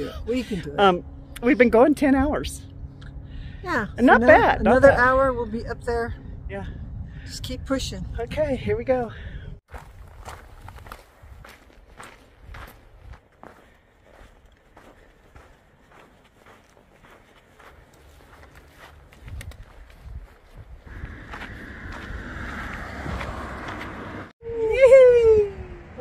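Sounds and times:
footsteps on gravel: 0:09.7 - 0:24.2.

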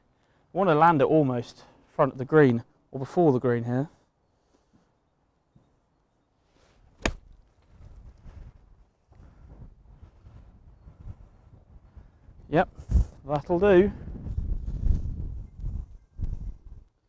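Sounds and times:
golf club striking ball: 0:07.0 - 0:07.4.

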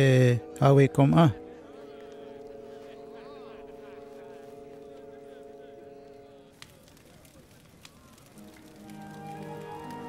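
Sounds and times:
film score low chord: 0:00.0 - 0:06.6
faint background voices: 0:01.3 - 0:09.5.

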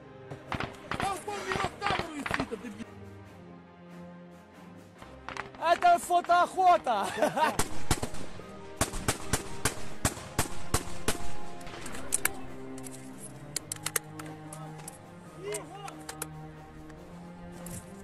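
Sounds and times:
people shouting: 0:00.8 - 0:02.8, 0:15.4 - 0:16.0
small-arms gunfire: 0:07.5 - 0:11.4.

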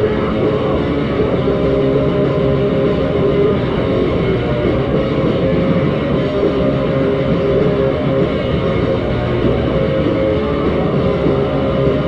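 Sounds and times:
live punk band playing: 0:00.0 - 0:12.0.

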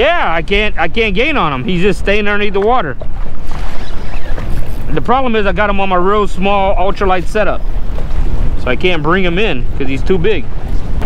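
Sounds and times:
water splashing against hull: 0:00.0 - 0:11.0
wind buffeting microphone: 0:00.0 - 0:11.0.

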